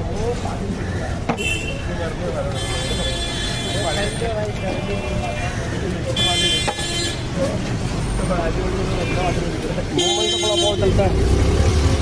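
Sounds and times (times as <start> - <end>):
street traffic noise: 0.0 - 12.0
vehicle horn honking: 10.0 - 11.0.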